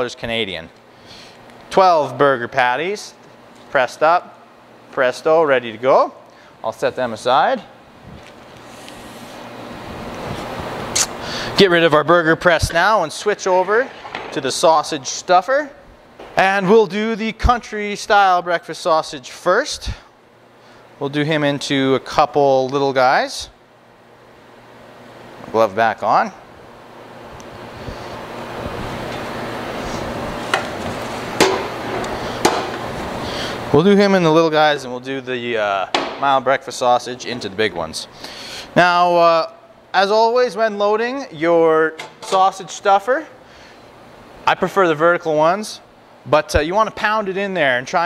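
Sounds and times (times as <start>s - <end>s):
sharp knocks: 31.4s - 32.8s, 35.9s - 36.2s.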